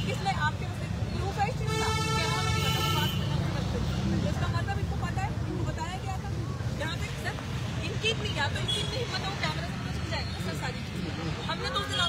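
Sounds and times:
crowd voices talking: 0:00.0 - 0:12.0.

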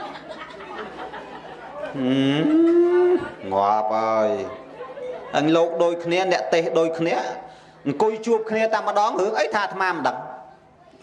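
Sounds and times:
man's long drawn-out vocal call: 0:02.0 - 0:03.3.

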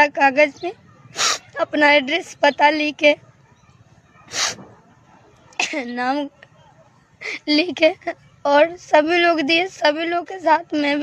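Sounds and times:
woman speaking: 0:00.0 - 0:00.8, 0:01.5 - 0:03.2, 0:05.6 - 0:06.4, 0:07.2 - 0:11.0
woman sniffing: 0:01.2 - 0:01.5, 0:04.3 - 0:04.6.

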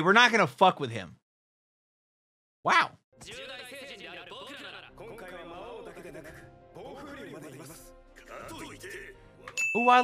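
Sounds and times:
background music: 0:03.2 - 0:10.0.

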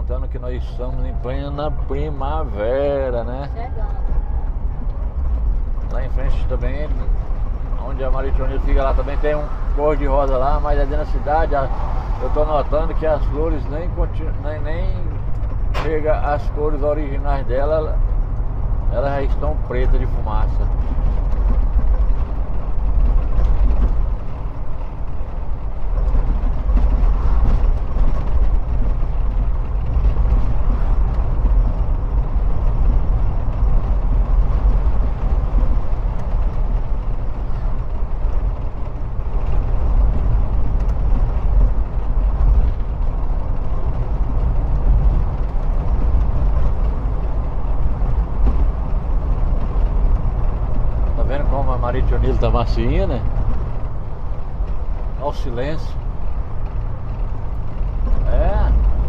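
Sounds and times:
car driving on highway: 0:00.0 - 0:59.0.

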